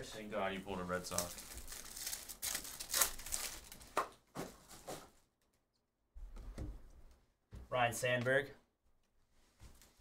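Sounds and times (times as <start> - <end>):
foil wrapper crinkling and tearing: 1.0 - 4.0.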